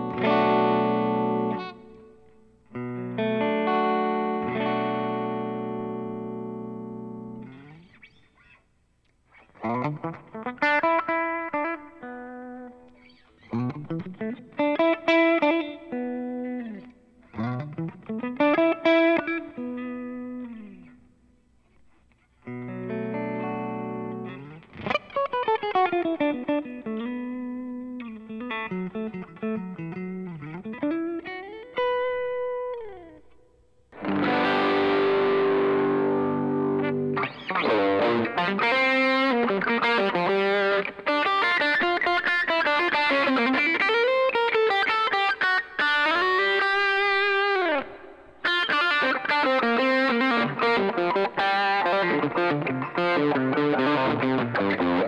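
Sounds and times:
electric guitar playing: 0.0 - 8.6, 9.3 - 21.1, 22.4 - 55.0.

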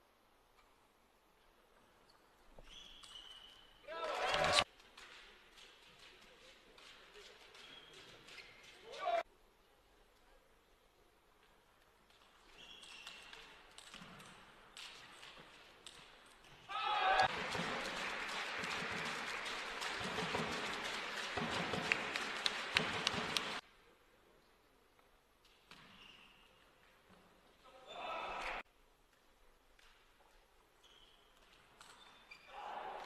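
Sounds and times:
crowd cheering and applauding: 17.2 - 23.6.

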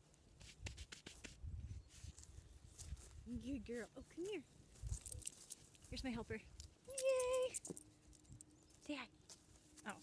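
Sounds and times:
rustling on grass: 0.0 - 8.1.

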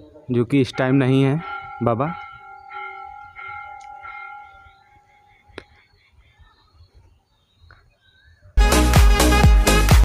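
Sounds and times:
temple bell ringing: 0.2 - 5.5.

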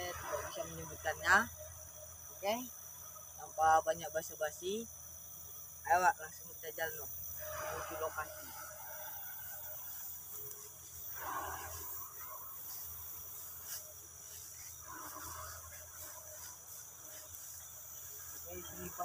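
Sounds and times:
crickets chirring: 0.0 - 19.0.

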